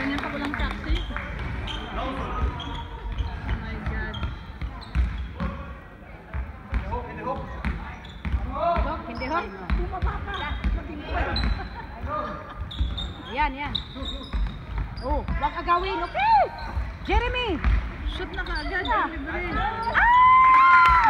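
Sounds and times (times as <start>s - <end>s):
sneakers squeaking on court: 0.4s - 20.0s
basketball dribbling thuds: 1.2s - 5.7s, 6.3s - 19.7s.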